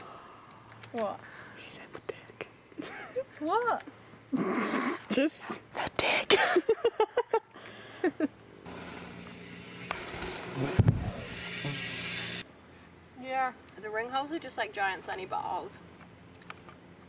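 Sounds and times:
woman laughing: 0:02.8 - 0:03.4, 0:06.3 - 0:08.4
bike tyre and wind rush: 0:08.7 - 0:12.4.

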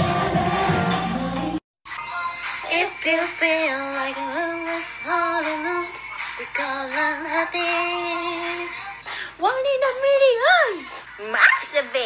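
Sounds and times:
women singing into microphones: 0:02.6 - 0:08.7.

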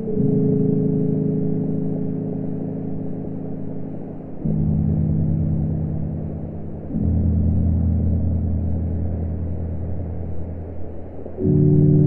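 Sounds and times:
slow ambient droning chords: 0:00.0 - 0:12.0.

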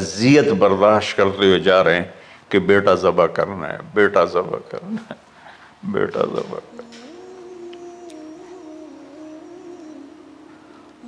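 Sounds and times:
soft drone background music: 0:06.7 - 0:11.0.

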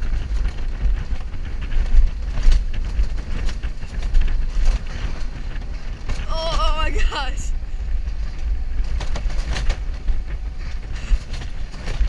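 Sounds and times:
rattles and clacks: 0:00.0 - 0:06.6, 0:07.8 - 0:12.0
coaster wheels rumbling on track: 0:00.0 - 0:12.0
wind buffeting microphone: 0:00.0 - 0:12.0.

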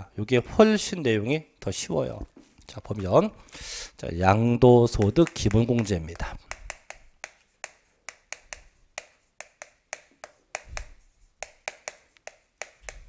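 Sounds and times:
chalk tapping on blackboard: 0:04.8 - 0:13.0.

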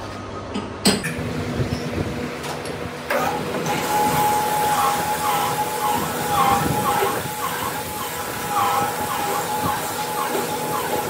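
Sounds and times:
workshop machine running: 0:00.0 - 0:11.0
steady high whine: 0:01.1 - 0:11.0.

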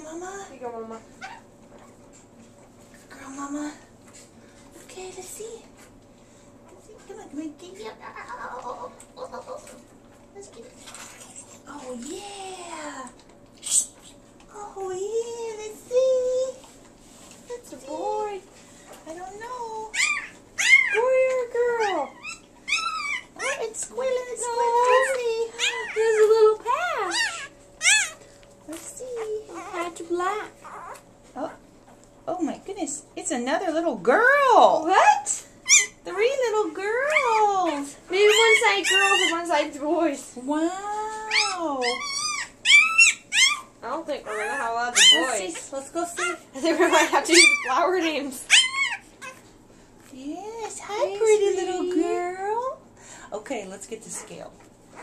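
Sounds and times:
puppy squeaking: 0:19.9 - 0:21.1, 0:21.8 - 0:23.7, 0:24.8 - 0:26.3, 0:27.0 - 0:28.2, 0:30.6 - 0:31.0, 0:35.6 - 0:36.0, 0:38.2 - 0:39.5, 0:41.3 - 0:45.6, 0:46.2 - 0:46.4, 0:47.2 - 0:49.4.

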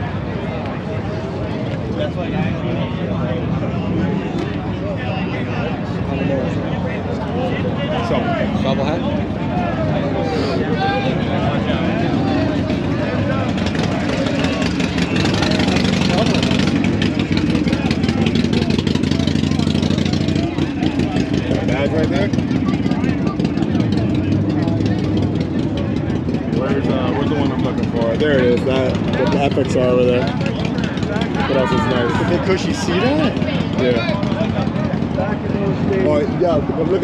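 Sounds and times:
crowd chatter: 0:00.0 - 0:37.0
motorcycle engine idling: 0:08.4 - 0:37.0.

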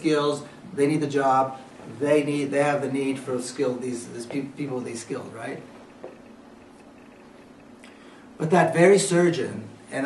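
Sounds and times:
low hum: 0:04.7 - 0:08.3.

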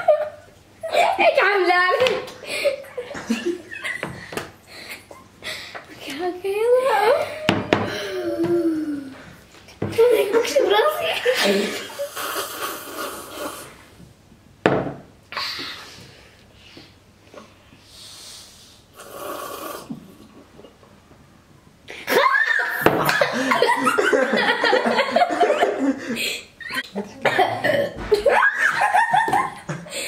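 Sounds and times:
girls laughing and giggling: 0:00.0 - 0:05.6, 0:06.7 - 0:12.4, 0:21.9 - 0:30.0.

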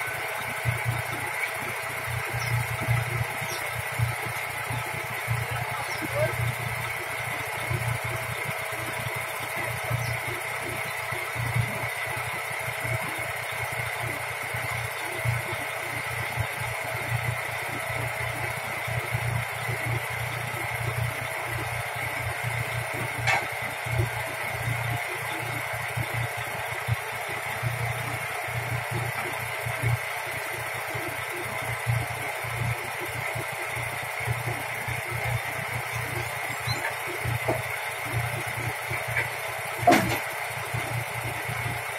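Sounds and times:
diesel engine idling: 0:00.0 - 0:41.9.

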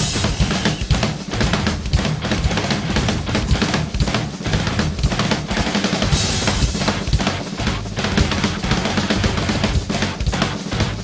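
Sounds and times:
cymbal crash: 0:00.0 - 0:02.1
fast drum kit playing: 0:00.0 - 0:11.0.

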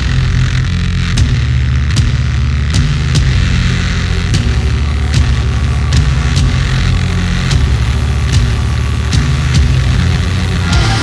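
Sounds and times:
heavy progressive rock: 0:00.0 - 0:11.0.

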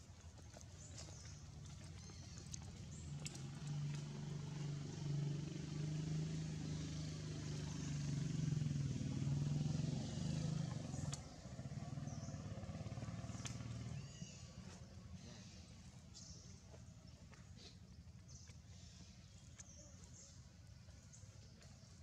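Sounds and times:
motor engine humming: 0:00.1 - 0:18.7.

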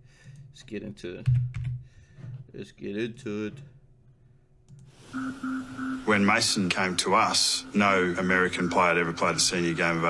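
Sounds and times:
faint hiss: 0:04.9 - 0:10.0.

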